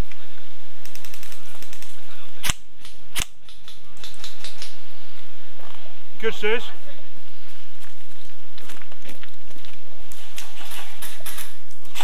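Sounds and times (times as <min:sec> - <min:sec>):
airsoft guns firing rapid clicks: 0:00.8 - 0:04.8
loud sharp gun cracks: 0:00.8 - 0:04.8.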